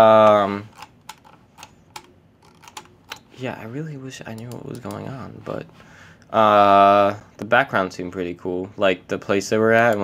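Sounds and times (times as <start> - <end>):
computer keys clicking: 0.2 - 3.2.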